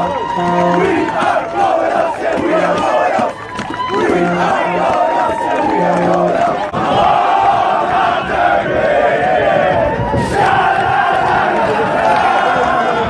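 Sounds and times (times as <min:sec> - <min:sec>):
crowd of men shouting and chanting: 0:00.0 - 0:13.0.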